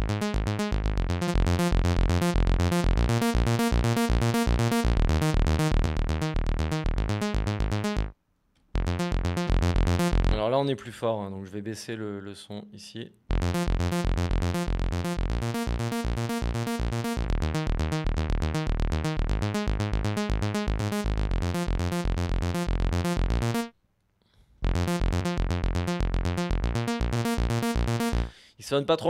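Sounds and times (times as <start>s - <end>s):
synthesizer sequenced bass pattern: 0.0s - 10.6s, 13.3s - 23.7s, 24.6s - 28.4s.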